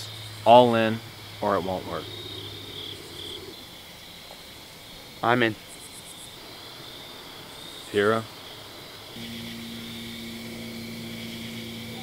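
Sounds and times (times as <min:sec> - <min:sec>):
crickets chirping: 0:00.0 - 0:12.0
low steady hum: 0:09.1 - 0:12.0.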